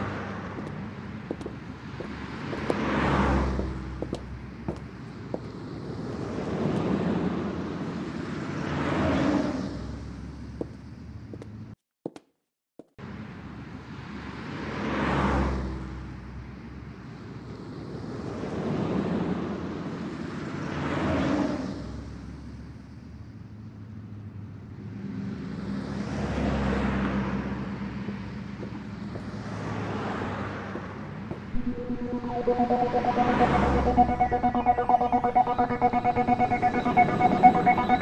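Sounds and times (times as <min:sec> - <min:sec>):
cars passing: 0:00.0 - 0:10.8, 0:24.8 - 0:38.0.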